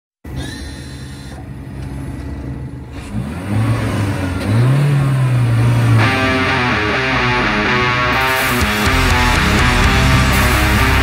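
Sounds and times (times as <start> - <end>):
heavy metal band: 5.9 - 11.0
low droning sound: 5.9 - 11.0.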